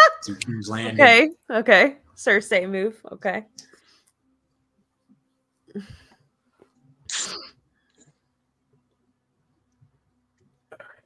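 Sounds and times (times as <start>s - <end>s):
person sneezing: 7.1s - 7.6s.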